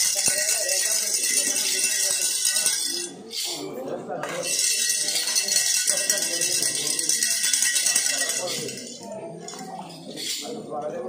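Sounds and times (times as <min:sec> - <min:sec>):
small bells jingling: 0:00.0 - 0:03.5, 0:04.2 - 0:09.6.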